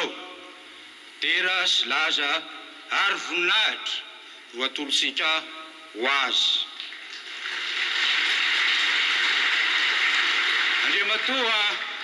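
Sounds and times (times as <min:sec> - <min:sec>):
large audience applauding: 0:07.2 - 0:12.0.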